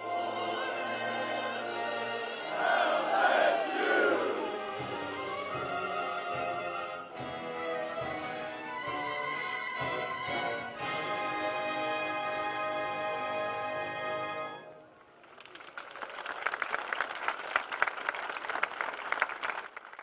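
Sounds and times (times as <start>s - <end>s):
choir singing: 0.0s - 7.0s
wind ensemble playing: 0.0s - 15.0s.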